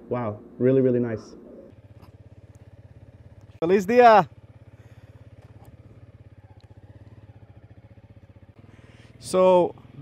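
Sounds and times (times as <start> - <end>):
motorcycle engine idling: 0.9 - 10.0.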